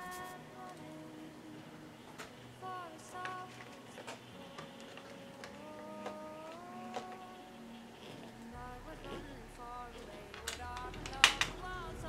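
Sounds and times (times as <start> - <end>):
soft music with held notes: 0.0 - 12.0.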